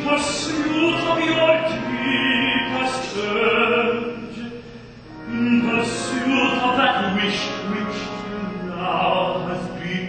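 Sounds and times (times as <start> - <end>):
opera-style singing: 0.0 - 10.0
orchestral accompaniment: 5.0 - 10.0.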